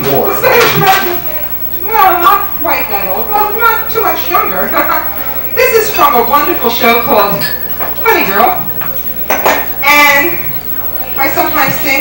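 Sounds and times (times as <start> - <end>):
dishes and cutlery clinking: 9.3 - 9.7.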